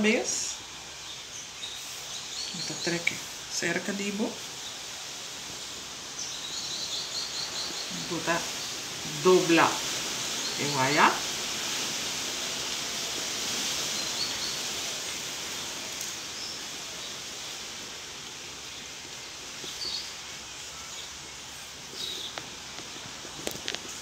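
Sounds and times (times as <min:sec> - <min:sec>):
outdoor background hiss: 0:00.0 - 0:24.0.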